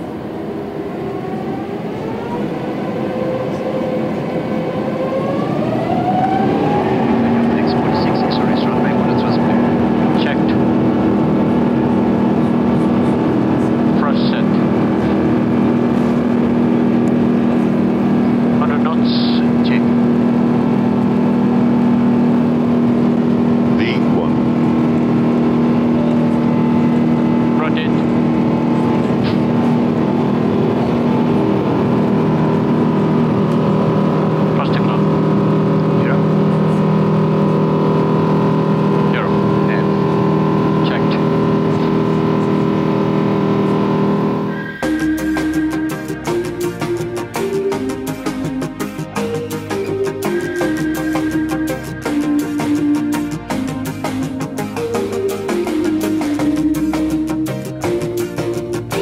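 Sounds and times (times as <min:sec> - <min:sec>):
jet engines spooling up: 0:00.0 - 0:59.0
takeoff roll rumble: 0:00.0 - 0:59.0.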